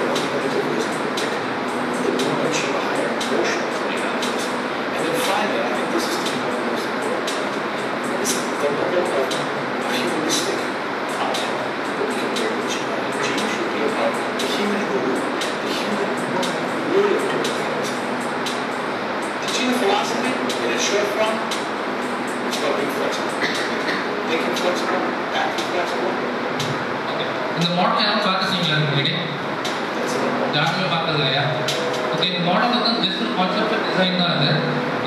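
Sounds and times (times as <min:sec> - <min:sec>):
muffled speech over loudspeakers: 0:00.0 - 0:35.0
steady hiss and rumble: 0:00.0 - 0:35.0.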